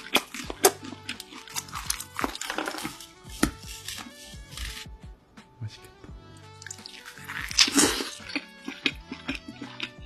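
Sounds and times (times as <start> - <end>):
background music: 0.0 - 10.0
person chewing with mouth clicks: 6.7 - 10.0.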